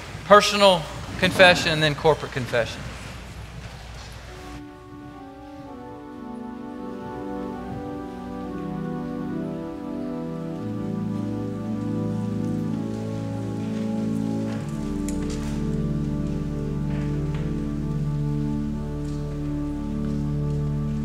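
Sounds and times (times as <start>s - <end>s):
pipe organ chords: 4.3s - 21.0s.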